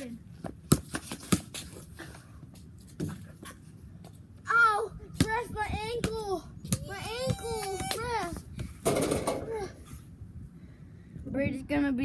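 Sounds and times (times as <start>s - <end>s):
basketball bouncing on concrete: 0.4s - 1.8s, 5.2s - 9.5s.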